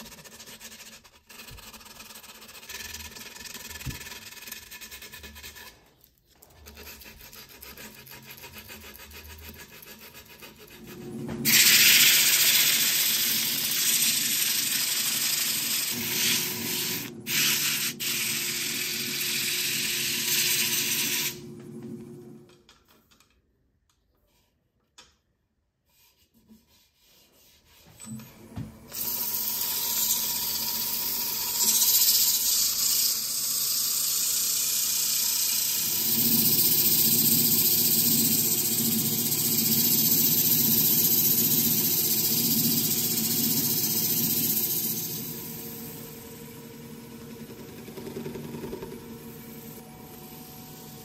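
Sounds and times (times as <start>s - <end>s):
wood lathe hum: 28.9s - 51.0s.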